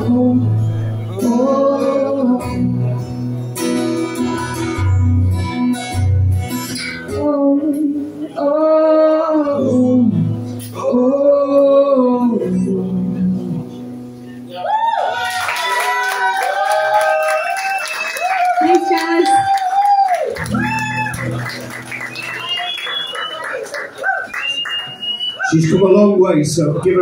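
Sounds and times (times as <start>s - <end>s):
whooping and cheering voices: 14.5s - 25.6s
audience applause: 14.8s - 25.6s.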